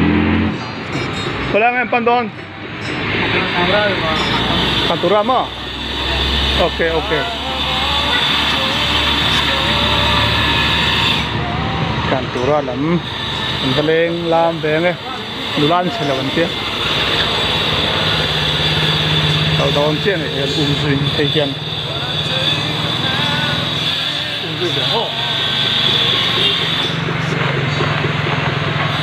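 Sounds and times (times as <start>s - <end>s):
high-pitched whine: 0.0s - 29.0s
small motorcycle engine running: 3.2s - 29.0s.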